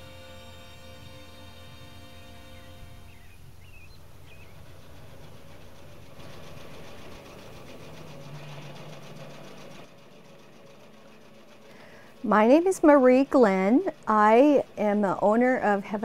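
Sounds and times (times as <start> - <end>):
sewing machine stitching: 5.0 - 16.0.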